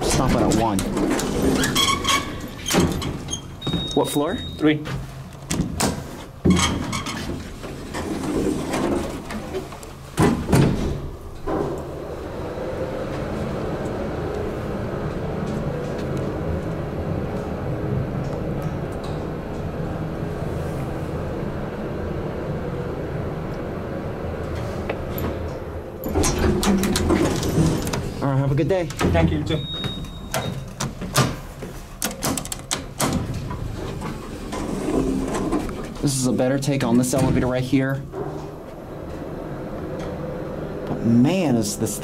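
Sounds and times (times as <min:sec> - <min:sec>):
elevator door knocks and clunks: 0:02.4 - 0:04.0, 0:28.8 - 0:31.4
elevator motor humming: 0:07.3 - 0:31.1, 0:32.6 - 0:42.0.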